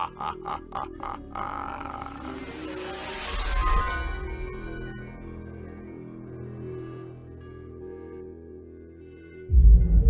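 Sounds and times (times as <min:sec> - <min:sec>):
man laughing: 0:00.0 - 0:02.5
music with rising sweep: 0:09.3 - 0:10.0.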